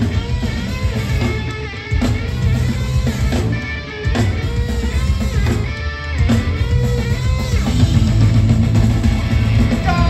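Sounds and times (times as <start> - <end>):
drum kit: 0.0 - 10.0
electric guitar riff: 0.0 - 10.0.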